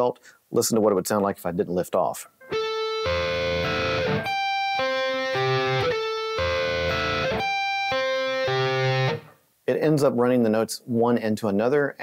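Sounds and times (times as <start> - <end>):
electric guitar arpeggio: 2.4 - 9.3.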